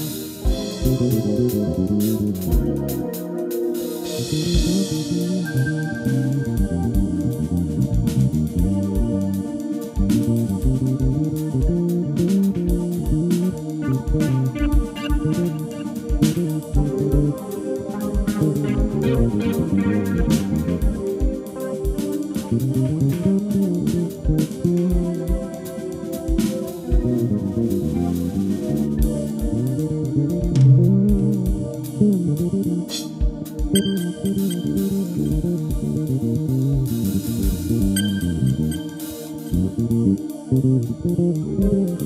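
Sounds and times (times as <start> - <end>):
electric bass line: 0.0 - 3.4, 4.0 - 42.0
electric keyboard: 0.0 - 42.0
live band playing: 11.9 - 31.4, 32.4 - 39.9.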